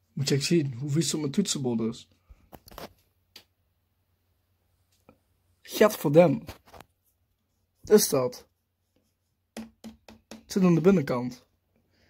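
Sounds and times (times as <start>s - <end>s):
device handling clicks and rustles: 2.5s - 3.5s.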